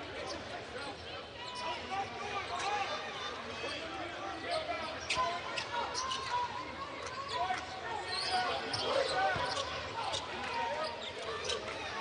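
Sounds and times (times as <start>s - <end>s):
crowd voices chattering: 0.0s - 12.0s.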